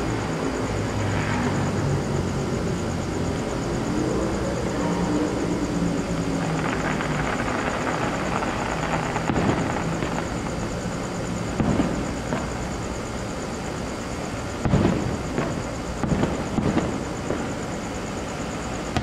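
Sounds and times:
steady background rumble: 0.0 - 19.0
distant fireworks booming: 6.1 - 12.8, 14.5 - 17.9, 18.8 - 19.0.

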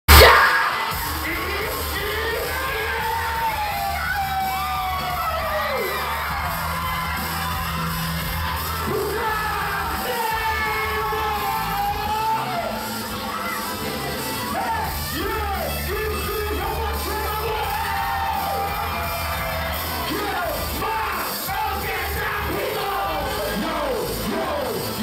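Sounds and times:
hip-hop backing track: 0.1 - 25.0
voices shouting and whooping: 0.1 - 25.0.

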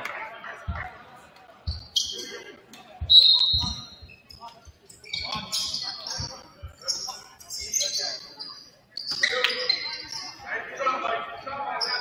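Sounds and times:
shoe squeak: 1.6 - 10.4, 11.8 - 12.0.

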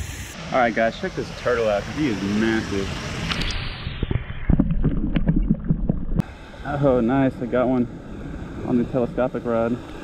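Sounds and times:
underwater rumbling water movement: 2.8 - 6.6.

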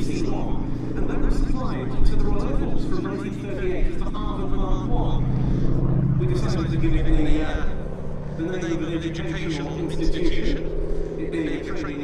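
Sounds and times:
propeller plane engine drone: 0.0 - 12.0.

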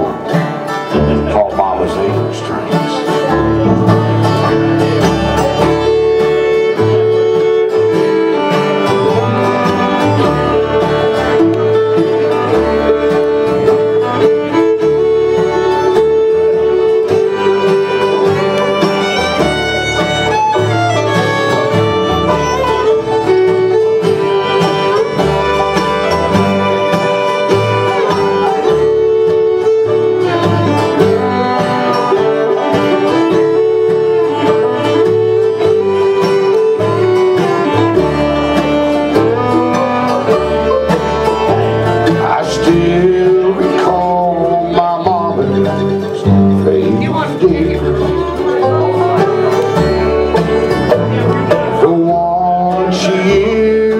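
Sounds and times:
acoustic guitar: 0.0 - 53.9
banjo: 0.0 - 53.9
bowed fiddle: 0.0 - 53.9
mandolin: 0.0 - 53.9.

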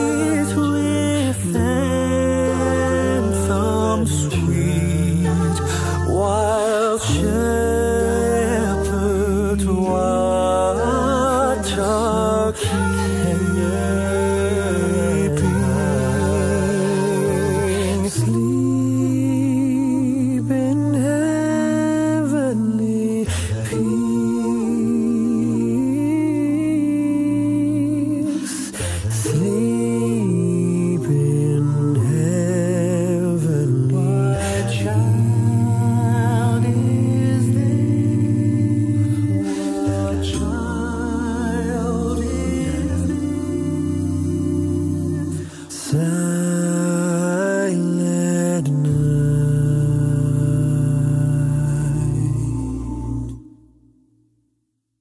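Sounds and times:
vocal group humming chords: 0.0 - 54.0.

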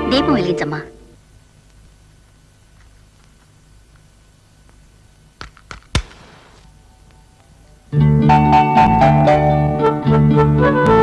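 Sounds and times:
faint low hum: 0.0 - 9.9
sharp knocks: 5.4 - 6.6.

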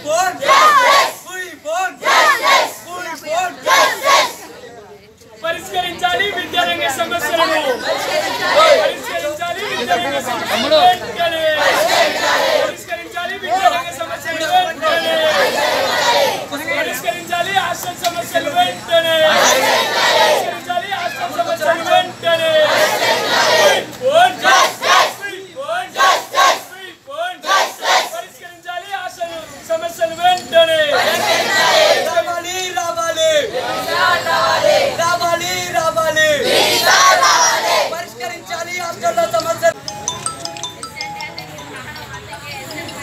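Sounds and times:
children chanting slogans: 0.4 - 1.3, 2.0 - 2.9, 3.6 - 4.5, 7.8 - 9.1, 11.5 - 12.8, 14.9 - 16.4, 19.3 - 20.5, 22.6 - 25.2, 26.0 - 26.7, 27.4 - 28.2, 30.9 - 32.1, 33.4 - 35.0, 36.4 - 38.0.

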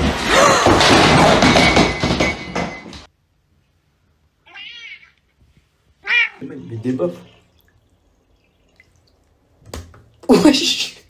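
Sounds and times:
cat meowing: 4.4 - 5.3, 6.0 - 6.6.

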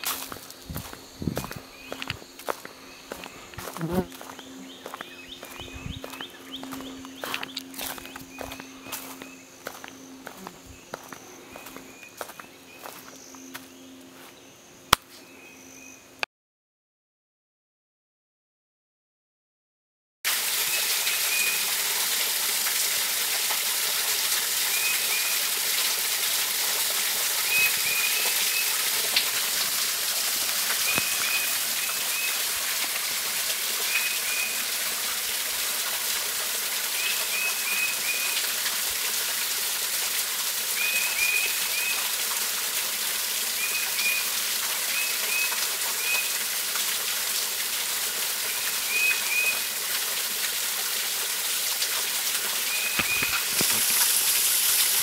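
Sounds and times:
small waterfall splashing: 0.0 - 13.0, 20.3 - 55.0.

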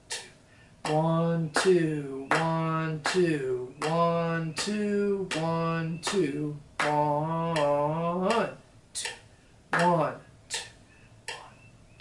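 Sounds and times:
man clapping a steady beat: 0.0 - 11.6
man counting aloud: 0.1 - 10.7.

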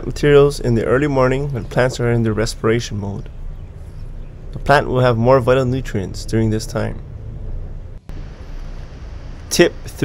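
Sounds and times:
outdoor low rumble: 0.0 - 10.0.

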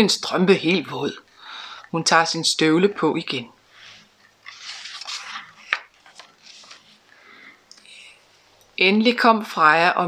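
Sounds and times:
paper page rustling: 4.4 - 7.0.

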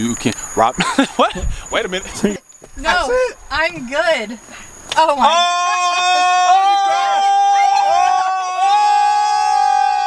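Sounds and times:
woman shrieking: 5.2 - 10.0.

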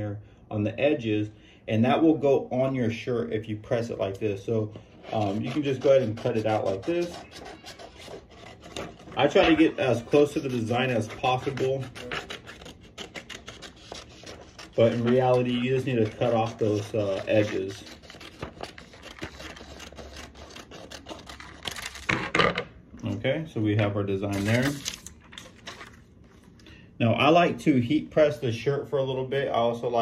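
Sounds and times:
paper rustling: 4.8 - 22.3, 24.2 - 26.6
scissors snipping paper: 5.2 - 22.1.

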